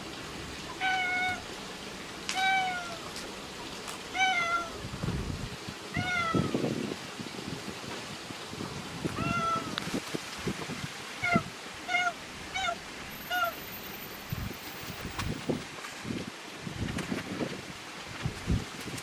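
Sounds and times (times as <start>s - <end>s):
cat meowing: 0.8s - 1.4s, 2.3s - 3.0s, 4.2s - 4.7s, 5.9s - 6.6s, 9.2s - 9.8s, 11.2s - 13.6s.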